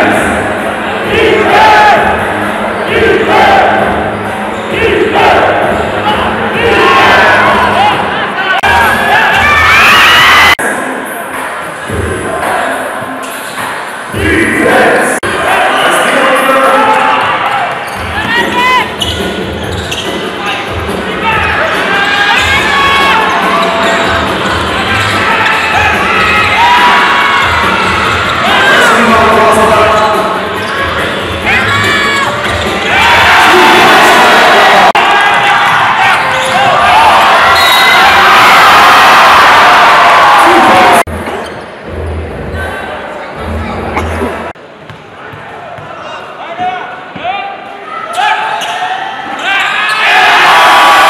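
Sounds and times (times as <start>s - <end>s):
players and crowd shouting: 0.0s - 10.8s, 14.2s - 19.2s, 19.9s - 41.1s, 45.1s - 51.0s
loud crowd noise: 0.0s - 51.0s
basketball bouncing on court: 44.8s - 46.0s.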